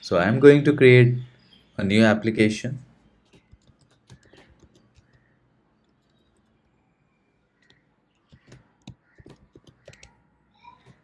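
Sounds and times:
faint keyboard keystrokes: 3.2 - 6.6, 7.6 - 11.0.

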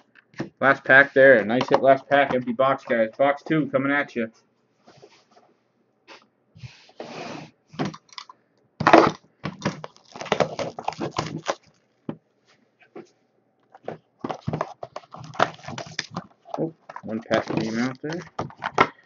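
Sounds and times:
cardboard rustling: 8.9 - 11.8, 13.7 - 19.0
plastic wrap crinkling: 8.9 - 12.0, 14.2 - 18.8.

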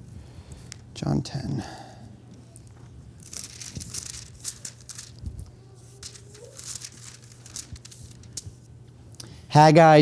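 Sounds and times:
low electrical hum: 0.0 - 10.0
paper pages rustling: 3.2 - 8.6.

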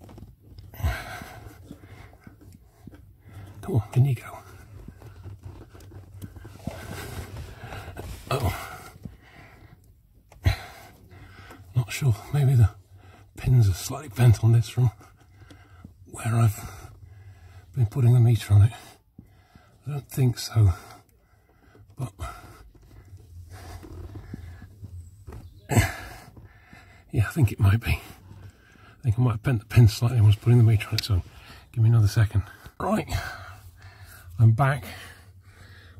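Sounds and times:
man breathing hard: 0.7 - 3.6, 6.2 - 11.7, 15.1 - 16.0, 16.6 - 17.8, 18.9 - 19.8, 20.7 - 27.1, 32.5 - 35.9.

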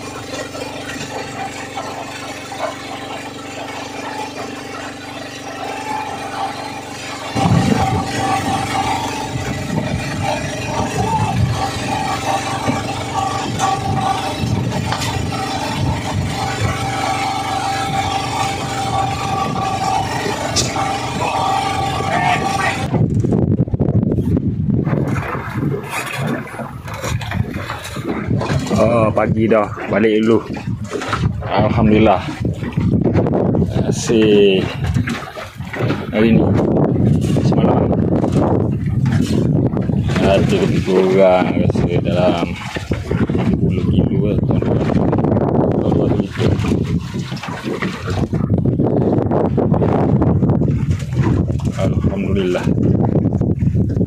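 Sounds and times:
boat engine running: 0.0 - 54.0
water and wind rushing along hull: 0.0 - 54.0.

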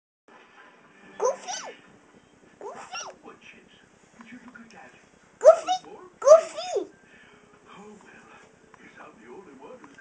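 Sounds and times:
toddler vocalizing: 1.2 - 1.8, 2.6 - 3.2.

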